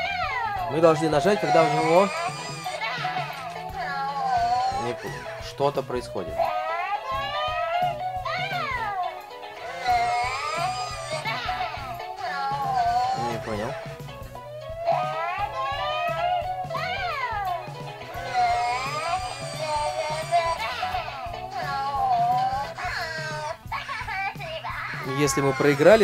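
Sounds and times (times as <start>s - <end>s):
cartoonish toy voice sounds: 1.3s - 5.4s, 9.6s - 13.8s, 14.7s - 17.6s, 18.2s - 25.6s.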